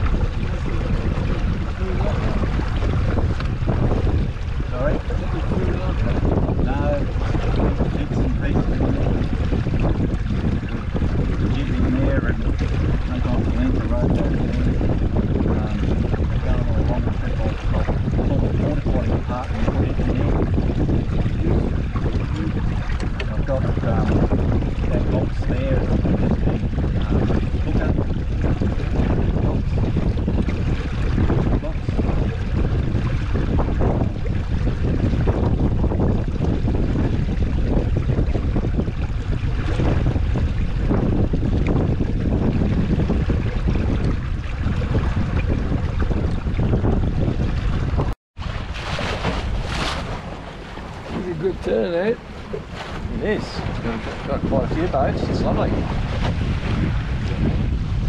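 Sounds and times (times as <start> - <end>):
water sloshing along hull: 0.0 - 58.0
wind buffeting microphone: 0.0 - 58.0.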